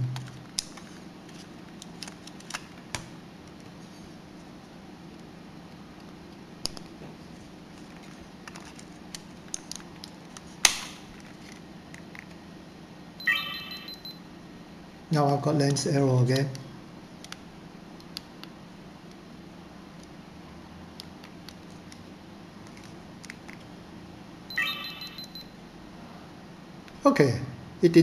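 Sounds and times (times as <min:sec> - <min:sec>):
sharp plastic snap: 0:10.6 - 0:11.0
short high electronic tone: 0:13.2 - 0:14.1, 0:24.5 - 0:25.4.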